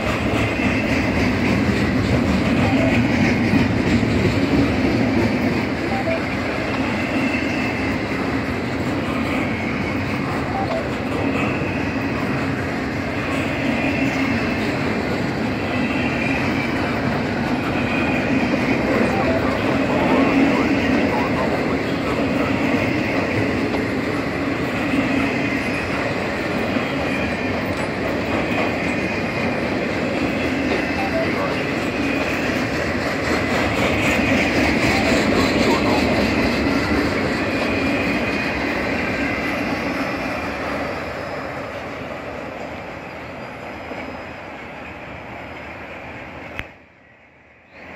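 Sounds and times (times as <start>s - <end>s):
freight train rolling past: 0.0s - 47.9s.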